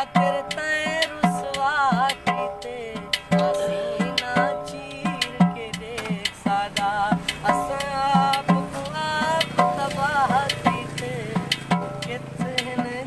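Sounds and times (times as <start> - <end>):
hand beats on container drum: 0.0 - 13.0
man singing folk song: 0.0 - 13.0.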